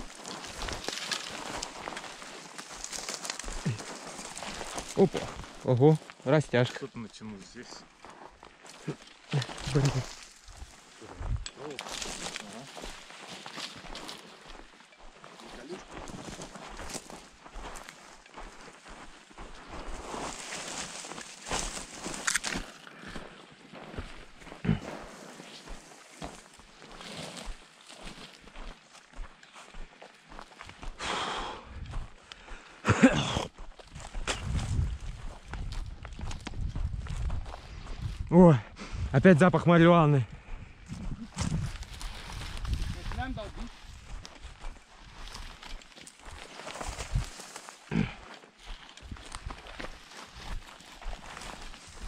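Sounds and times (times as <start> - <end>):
footsteps on stony ground: 0.0 - 52.0.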